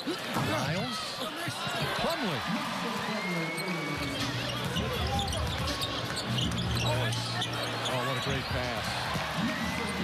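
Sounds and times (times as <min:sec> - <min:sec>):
crowd noise: 0:00.0 - 0:10.0
low arena music: 0:03.8 - 0:10.0.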